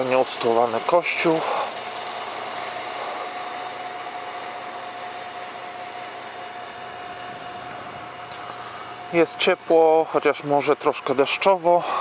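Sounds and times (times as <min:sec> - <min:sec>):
mechanical hum with whining tone: 0:00.0 - 0:12.0.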